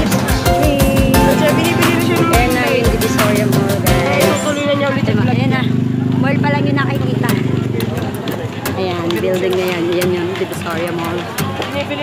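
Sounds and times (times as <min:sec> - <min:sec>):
music with a beat: 0:00.0 - 0:04.6
motorcycle engine running: 0:00.0 - 0:12.0
people talking: 0:00.6 - 0:12.0.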